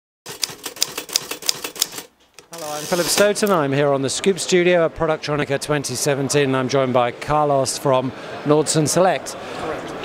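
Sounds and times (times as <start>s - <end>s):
typewriter keys clacking: 0.3s - 3.5s.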